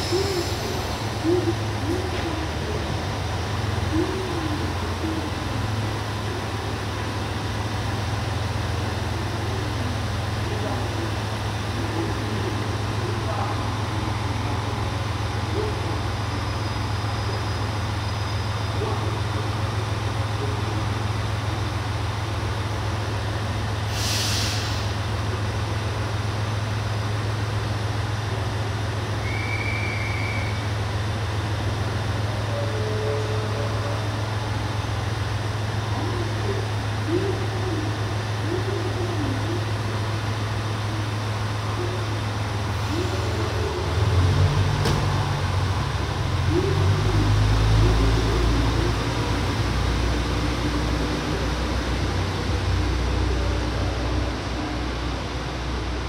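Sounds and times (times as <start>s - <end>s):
diesel train engine: 0.0s - 56.0s.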